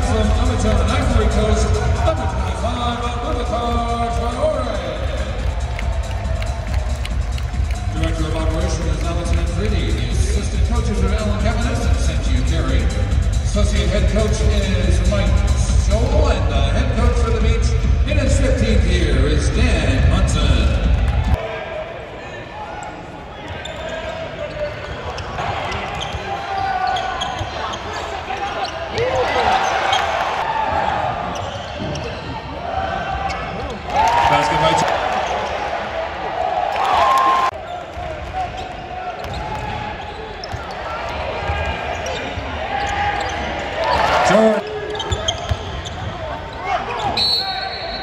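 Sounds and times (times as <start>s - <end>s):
loud arena music: 0.0s - 21.4s
crowd voices: 0.0s - 48.0s.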